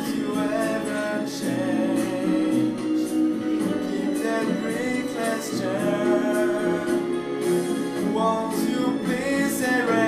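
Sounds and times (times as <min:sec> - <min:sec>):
karaoke backing track: 0:00.0 - 0:10.0
man singing: 0:00.0 - 0:10.0.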